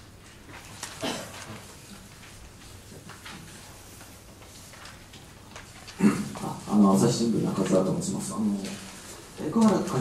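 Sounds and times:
man speaking: 0:06.1 - 0:10.0.

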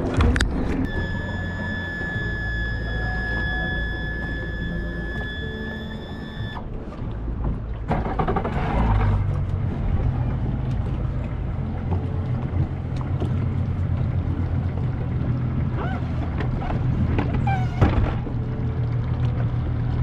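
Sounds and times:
low rumble: 0:00.0 - 0:20.0
water: 0:00.0 - 0:20.0
wind: 0:00.0 - 0:20.0
high-pitched electronic buzzer tone: 0:00.8 - 0:06.6.

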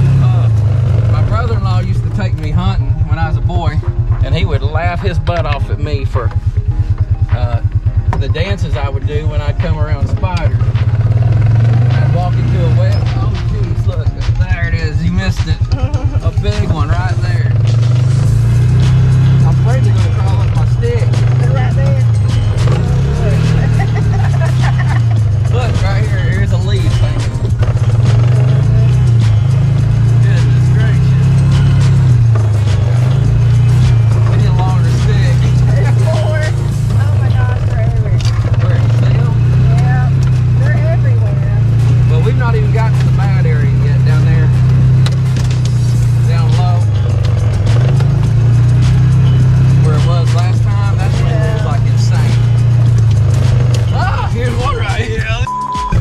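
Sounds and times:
vehicle engine running: 0:00.0 - 0:56.0
music with sung vocal: 0:10.0 - 0:56.0.

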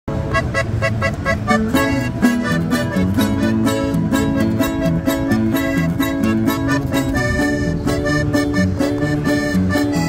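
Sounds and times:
bass line: 0:00.1 - 0:10.0.

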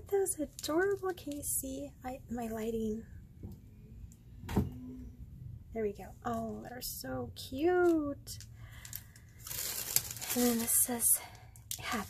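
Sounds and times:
plastic wrapper handling noise: 0:00.0 - 0:01.7, 0:07.8 - 0:12.0.

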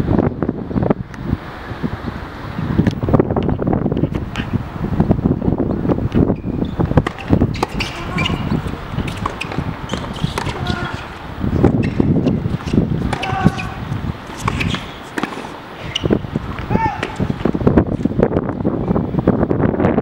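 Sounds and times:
wind noise on microphone: 0:00.0 - 0:20.0
tennis ball hit by rackets: 0:07.0 - 0:17.6.

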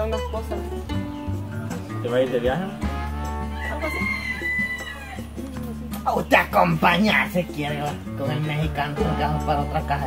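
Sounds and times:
background music: 0:00.0 - 0:10.0
rooster crowing: 0:03.2 - 0:05.8.

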